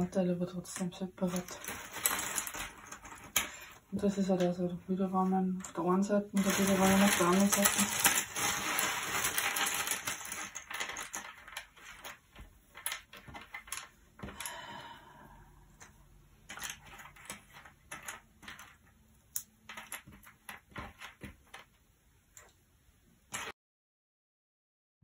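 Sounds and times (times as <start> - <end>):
jigsaw puzzle pieces clattering: 0.0 - 4.6, 5.2 - 14.7, 15.8 - 22.5, 23.3 - 23.5.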